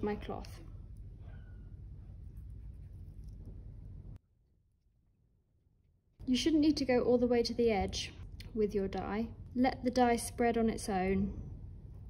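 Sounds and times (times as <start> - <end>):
steady low hum: 0.0 - 4.2, 6.2 - 12.0.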